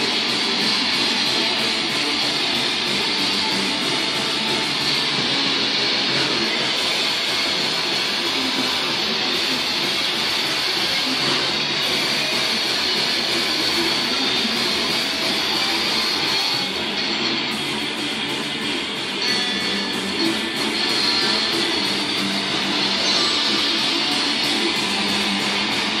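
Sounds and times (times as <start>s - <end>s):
distorted electric guitar: 0.0s - 26.0s
metal band playing live: 0.0s - 26.0s.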